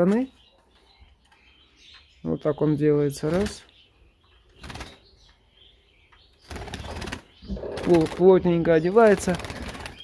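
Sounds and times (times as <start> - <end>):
soft bird chirps: 0.0 - 10.0
bird wings fluttering: 4.6 - 5.0, 6.5 - 8.3, 9.0 - 10.0.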